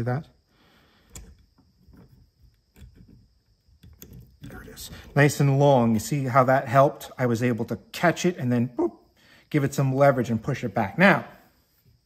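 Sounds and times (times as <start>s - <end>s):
small metal clicks: 1.0s - 4.6s.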